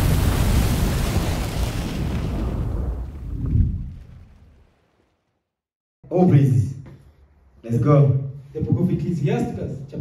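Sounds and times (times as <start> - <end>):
deep boom: 0.0 - 4.6.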